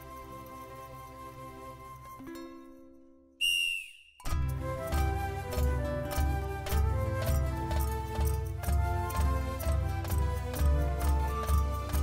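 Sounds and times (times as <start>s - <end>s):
sports whistle blast: 3.4s - 4.3s.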